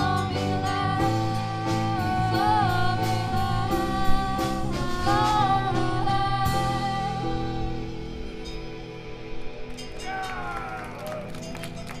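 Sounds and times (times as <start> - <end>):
live rock band: 0.0 - 12.0
scattered claps: 9.8 - 12.0.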